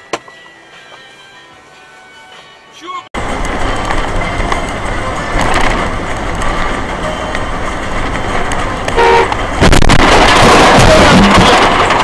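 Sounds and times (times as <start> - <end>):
road traffic noise: 0.0 - 12.0
car horn toot: 9.0 - 9.4.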